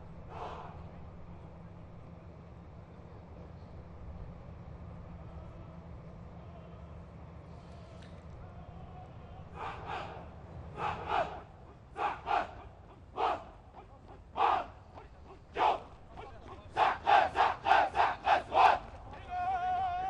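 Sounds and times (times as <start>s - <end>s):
troops shouting chants in unison: 8.5s - 20.0s.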